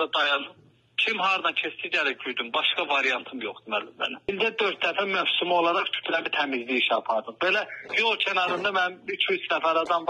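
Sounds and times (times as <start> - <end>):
man talking over telephone: 0.0 - 10.0.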